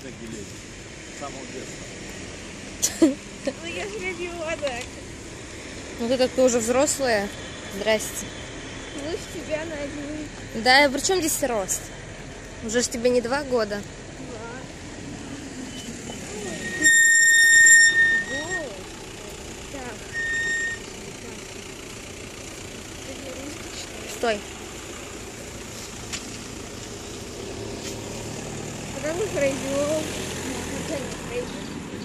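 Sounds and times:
background traffic noise: 0.0s - 32.0s
high-pitched electronic beeps: 15.6s - 18.8s, 20.0s - 20.9s.

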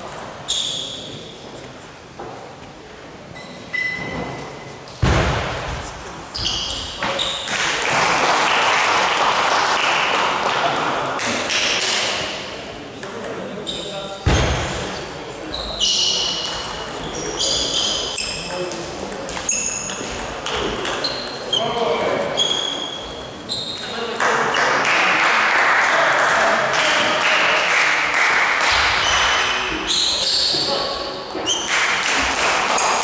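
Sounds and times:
murmur of voices: 0.0s - 33.0s
loud thump: 5.0s - 6.0s, 14.3s - 15.0s.

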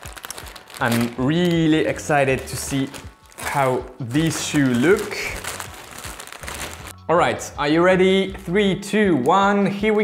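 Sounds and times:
plastic bags crinkling and rustling: 0.0s - 7.0s.

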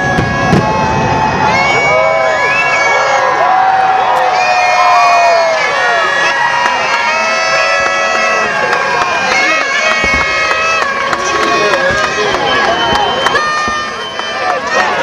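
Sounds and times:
low fireworks booms: 0.0s - 2.4s, 7.6s - 15.0s
crowd cheering and shouting: 0.0s - 15.0s.

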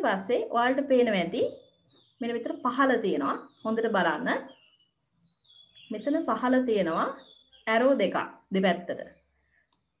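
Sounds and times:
woman's voice: 0.0s - 1.6s, 2.2s - 4.5s, 5.9s - 9.1s.

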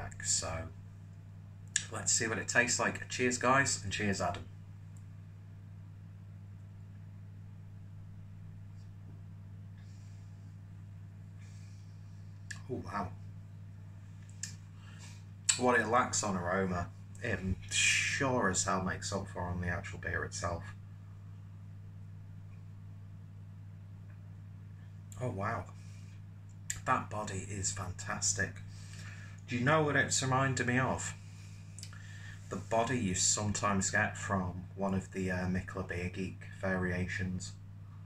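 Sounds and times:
faint small sounds: 0.0s - 36.7s
steady low hum: 0.0s - 38.0s.

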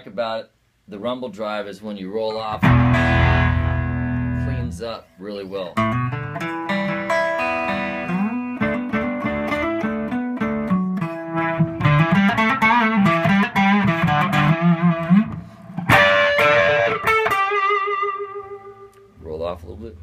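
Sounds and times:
overdriven electric guitar blues lick: 2.6s - 4.7s, 5.8s - 19.2s.

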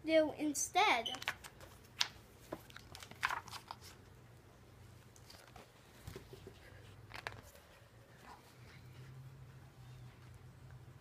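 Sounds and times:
book page rustles and clicks: 1.1s - 4.0s, 5.1s - 7.7s
low steady hum: 1.5s - 11.0s.

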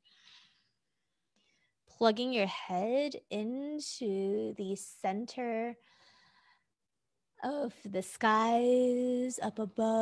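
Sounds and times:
woman breathing: 0.0s - 1.8s, 5.8s - 6.8s.

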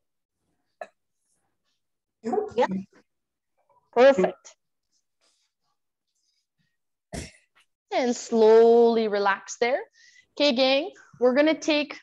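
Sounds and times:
person clearing throat: 7.1s - 7.4s.

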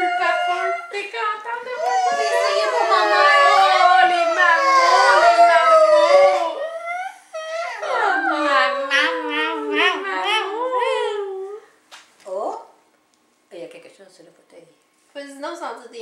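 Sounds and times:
overlapping howling calls: 0.0s - 10.6s.

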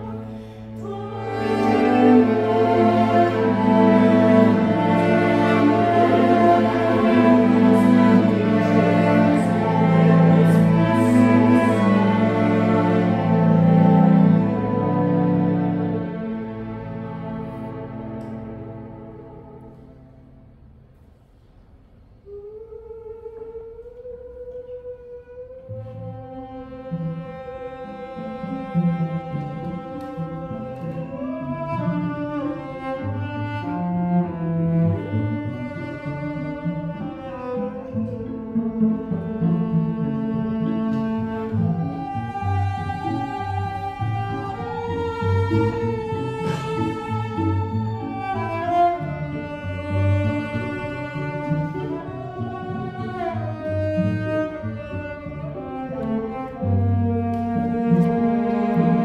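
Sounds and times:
cellos playing classical music: 0.0s - 21.5s, 22.2s - 59.0s.

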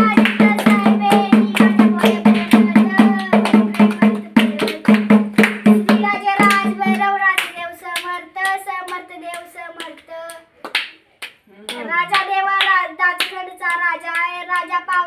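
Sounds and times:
hand drum: 0.0s - 7.0s
voices singing devotional song: 0.0s - 10.6s, 11.6s - 15.0s
hand claps: 0.0s - 15.0s.

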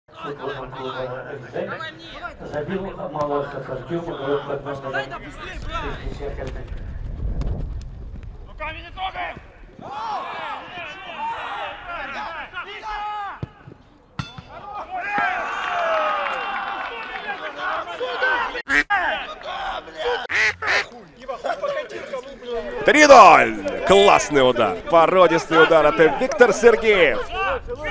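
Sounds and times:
voices shouting and yelling: 0.1s - 6.4s, 8.5s - 27.9s
crowd cheering: 9.7s - 27.9s.

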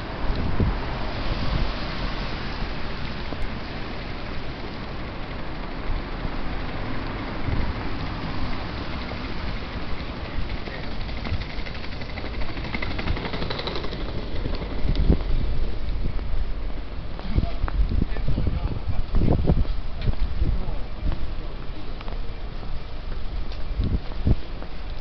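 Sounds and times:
cars passing: 0.0s - 23.5s
tyres on road: 0.0s - 25.0s.

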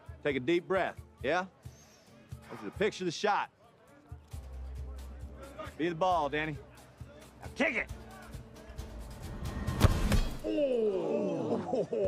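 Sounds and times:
background music: 0.0s - 12.0s
sharp thud: 9.7s - 10.5s.

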